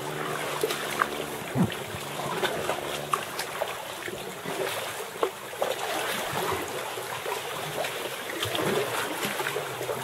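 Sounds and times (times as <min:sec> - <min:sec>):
water lapping against kayak: 0:00.0 - 0:10.0.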